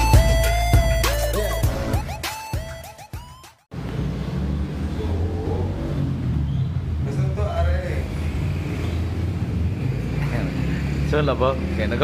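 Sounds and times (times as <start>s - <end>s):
intro music: 0.0s - 3.7s.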